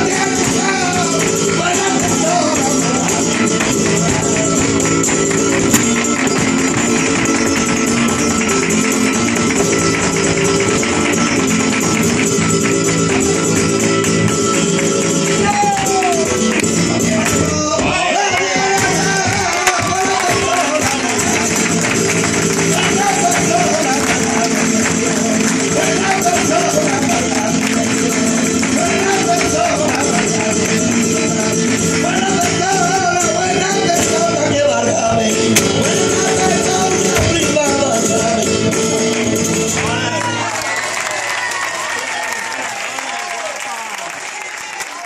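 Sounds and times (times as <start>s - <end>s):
dancer's footwork strikes: 0.0s - 14.5s
hand-clapping: 0.0s - 17.6s, 18.3s - 34.3s, 38.6s - 45.0s
man singing: 0.0s - 40.5s
flamenco guitar playing: 0.0s - 41.0s.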